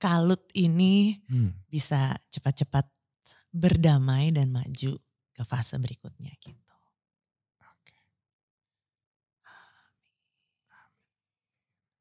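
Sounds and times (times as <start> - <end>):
faint whisper: 1.3 - 1.6.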